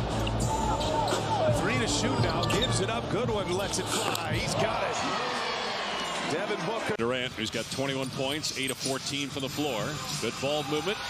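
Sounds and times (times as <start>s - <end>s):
music: 0.0s - 5.0s, 7.3s - 11.0s
arena crowd noise: 0.0s - 11.0s.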